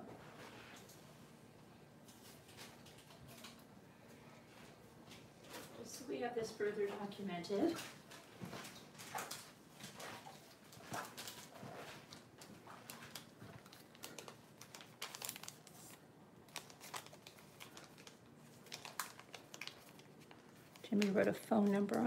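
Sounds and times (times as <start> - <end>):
paper crinkling and rustling: 7.0 - 22.0.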